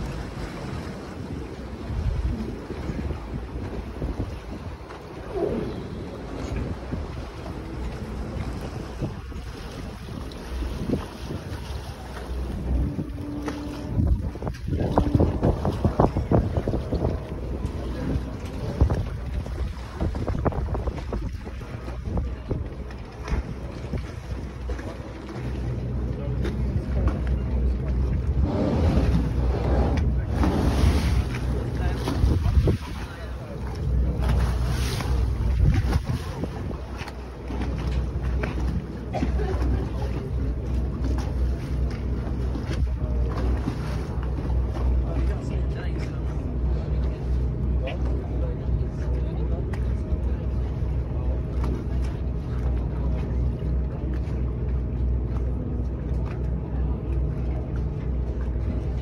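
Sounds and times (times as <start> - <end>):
wind buffeting microphone: 0.0 - 55.2
boat engine drone: 0.0 - 59.0
water rushing past hull: 0.0 - 59.0.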